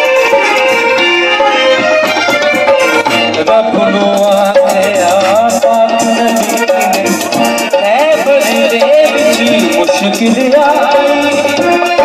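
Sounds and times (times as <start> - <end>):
fast rattling percussion: 0.0 - 12.0
harmonium melody: 0.0 - 12.0
tabla: 0.0 - 12.0.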